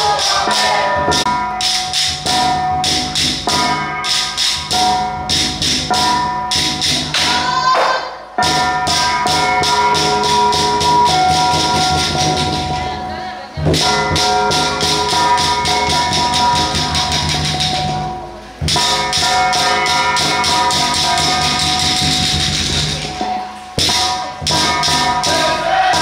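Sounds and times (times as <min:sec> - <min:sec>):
voices: 0:00.0 - 0:01.4, 0:07.2 - 0:26.0
drum and cymbals roll: 0:00.0 - 0:26.0
ringing metal tones: 0:00.0 - 0:26.0.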